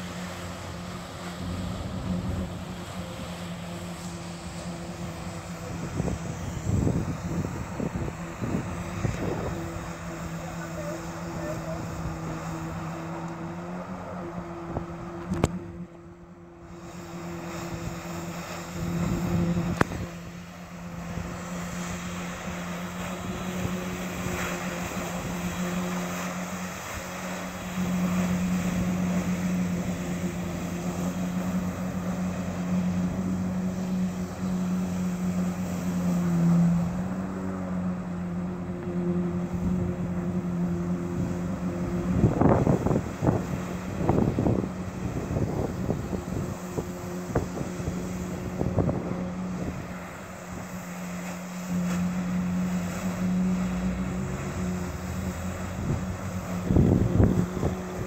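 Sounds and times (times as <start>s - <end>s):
jet ski engine running: 0.0s - 58.0s
rough wind gusts: 4.0s - 13.2s, 40.9s - 50.7s, 55.6s - 58.0s.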